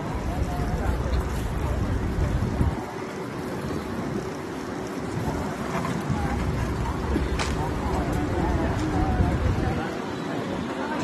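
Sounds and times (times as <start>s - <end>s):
city street noise: 0.0s - 11.0s
wind buffeting microphone: 0.0s - 11.0s.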